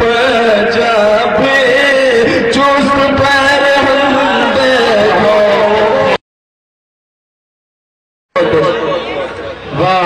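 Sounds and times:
people talking: 0:08.4 - 0:10.0.

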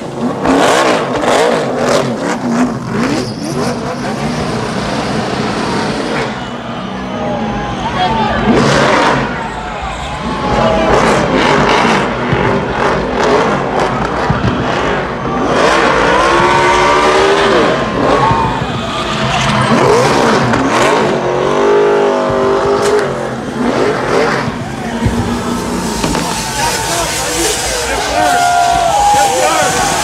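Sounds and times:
car engine revving hard: 0:00.0 - 0:06.5, 0:08.4 - 0:09.5, 0:10.3 - 0:30.0
spinning tyres rushing: 0:00.0 - 0:30.0.

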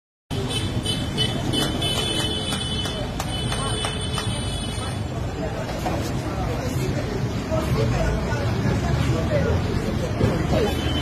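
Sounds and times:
road traffic: 0:00.3 - 0:11.0.

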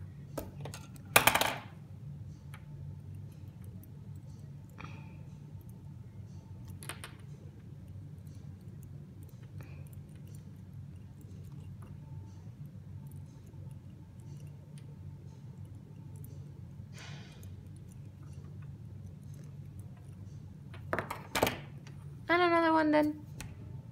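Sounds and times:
low steady hum: 0:00.0 - 0:23.9.

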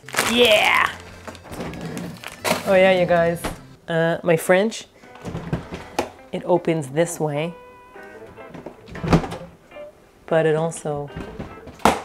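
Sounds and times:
refrigerator door thud: 0:03.2 - 0:03.7, 0:08.5 - 0:09.5.

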